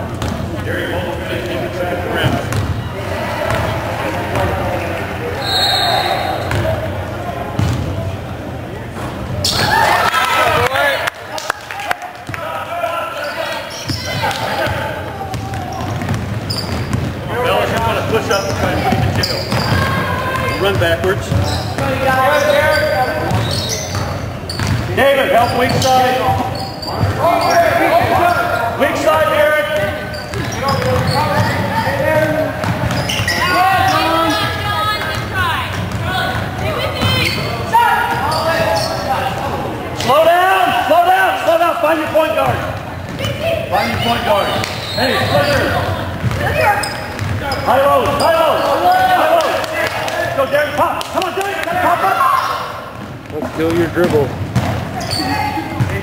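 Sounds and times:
indistinct echoing voices: 0:00.0 - 0:56.0
basketball bouncing on wooden floor: 0:02.2 - 0:02.7, 0:13.9 - 0:17.1, 0:23.2 - 0:24.9, 0:29.8 - 0:31.6, 0:46.2 - 0:47.4, 0:53.0 - 0:55.0.

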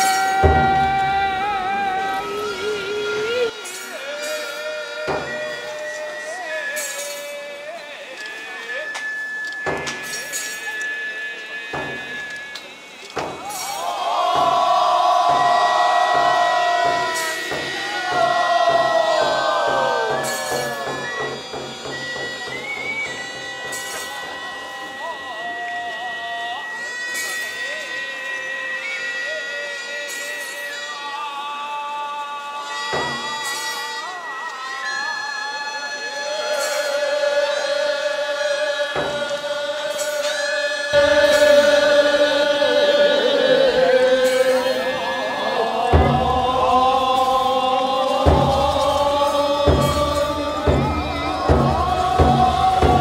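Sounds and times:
drum beats: 0:00.0 - 0:07.1, 0:11.8 - 0:25.2, 0:32.9 - 0:33.8, 0:38.9 - 0:53.0
wind instruments holding long tones: 0:00.0 - 0:53.0.

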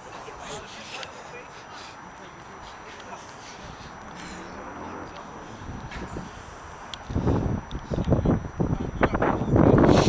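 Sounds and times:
wind buffeting microphone: 0:03.4 - 0:10.0.

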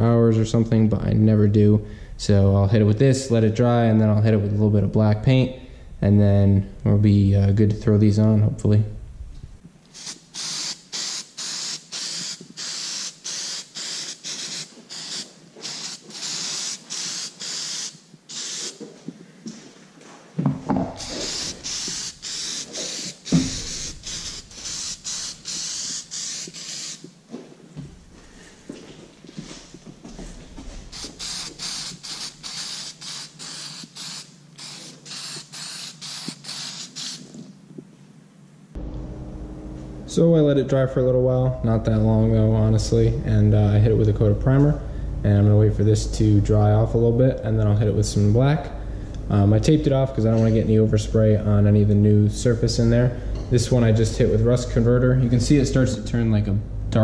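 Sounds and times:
aerosol spray hissing bursts: 0:09.9 - 0:18.8, 0:21.0 - 0:27.1, 0:30.9 - 0:37.4.

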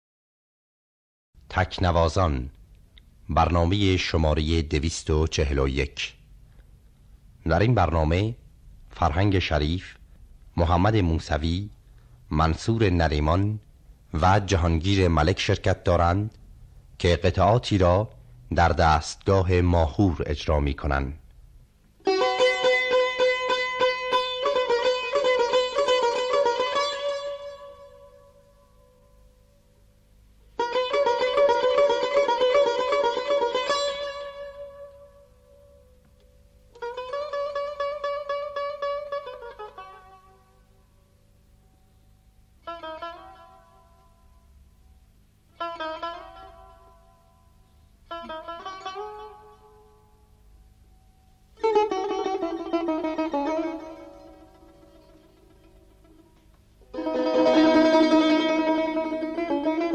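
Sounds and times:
plucked lute playing: 0:22.0 - 0:29.2, 0:30.5 - 0:40.7, 0:42.6 - 0:44.2, 0:45.6 - 0:47.4, 0:48.1 - 0:50.2, 0:51.5 - 0:59.9.

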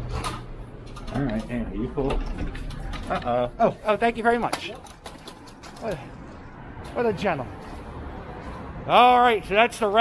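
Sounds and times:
city street background noise: 0:00.0 - 0:10.0.

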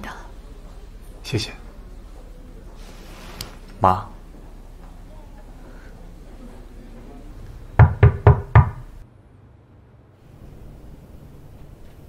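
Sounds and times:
knocks on a door: 0:07.8 - 0:08.9.

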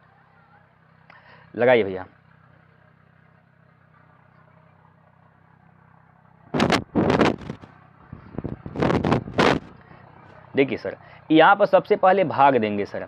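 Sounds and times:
low steady hum: 0:00.0 - 0:13.0
rough vehicle engine noise: 0:00.0 - 0:13.0.

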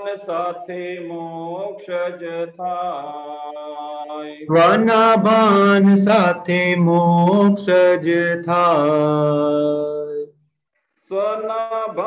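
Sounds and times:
person singing devotional song: 0:00.0 - 0:10.3, 0:11.0 - 0:12.0.

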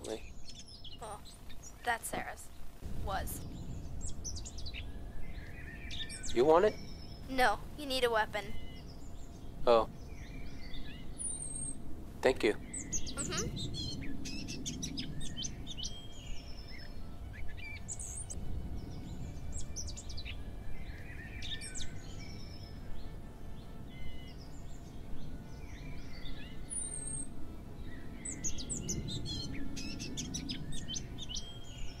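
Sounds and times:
birds chirping: 0:00.0 - 0:32.0
low outdoor rumble: 0:00.0 - 0:32.0.

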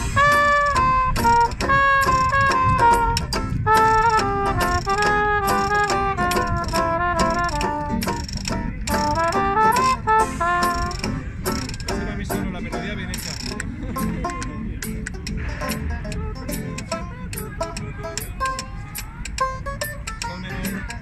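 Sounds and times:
trumpet and violin melody: 0:00.0 - 0:11.4
washboard scraping: 0:00.0 - 0:17.1
strummed ukulele and guitars: 0:00.0 - 0:21.0.

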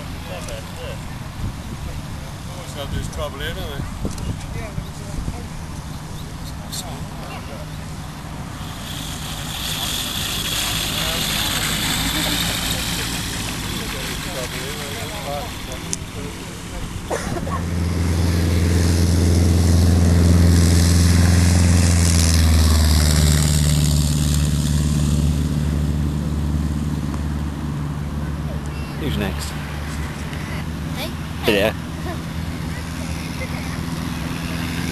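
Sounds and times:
light aircraft engine running: 0:00.0 - 0:34.9
low engine drone close by: 0:00.0 - 0:34.9.

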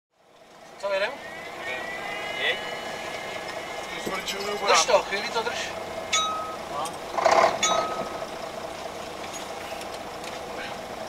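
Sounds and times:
vehicle engine idling: 0:00.1 - 0:11.0
voice: 0:00.8 - 0:05.8, 0:06.6 - 0:07.0.

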